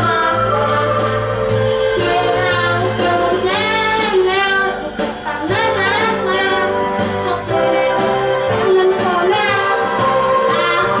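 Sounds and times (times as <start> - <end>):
girl singing into a microphone: 0.0 - 1.2, 1.8 - 11.0
instrumental backing track: 0.0 - 11.0.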